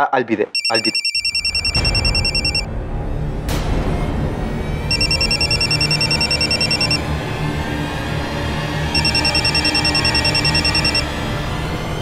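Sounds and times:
low background music: 0.1 - 12.0
phone ringtone electronic trill: 0.6 - 2.7, 4.9 - 7.0, 9.0 - 11.0.

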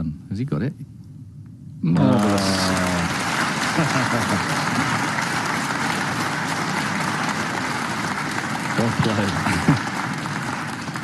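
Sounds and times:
audience clapping: 2.0 - 11.0.

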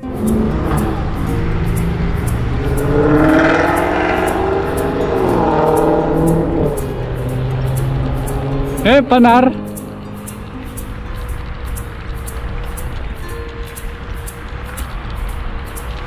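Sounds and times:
low traffic rumble: 0.0 - 16.0
motor vehicle passing: 0.0 - 16.0.

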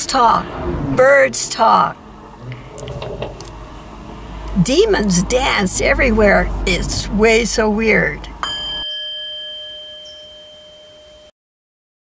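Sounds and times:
metal chime ringing: 8.4 - 11.3.

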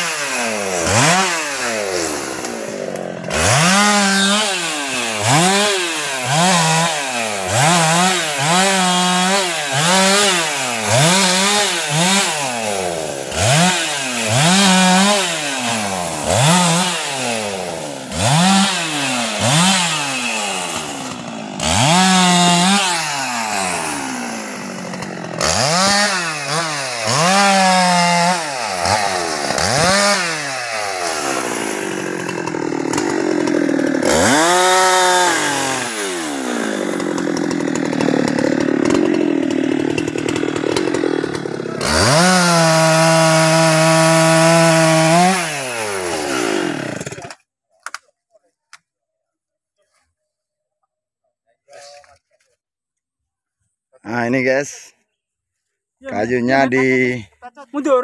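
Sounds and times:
chainsaw cutting wood: 0.0 - 48.0.

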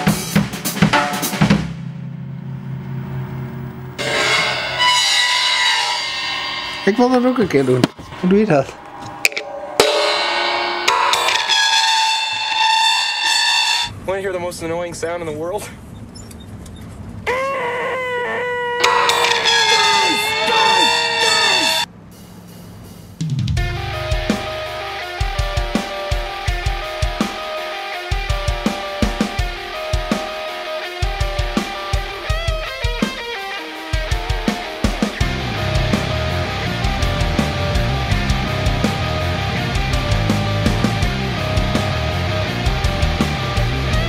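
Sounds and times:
hard rock music: 0.0 - 2.2, 3.8 - 13.9, 18.8 - 21.9, 23.3 - 44.0
distorted electric guitar: 2.2 - 13.9, 18.8 - 21.9, 23.6 - 44.0
man's high nasal screech: 17.4 - 21.9.

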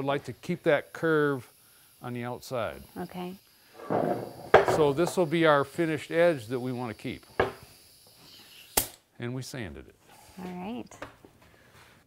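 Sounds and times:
wooden board knocking on workbench: 3.8 - 4.9.

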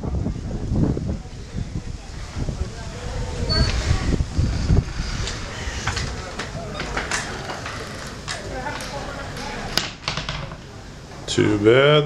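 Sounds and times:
wind buffeting microphone: 0.0 - 8.8
faint voices: 0.0 - 12.0.

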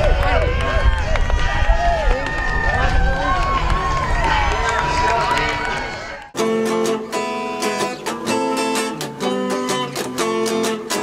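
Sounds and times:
crowd cheering and shouting: 0.0 - 6.4.

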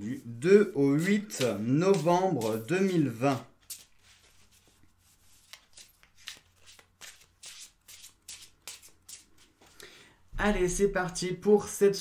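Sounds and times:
cards being shuffled: 0.8 - 9.7.

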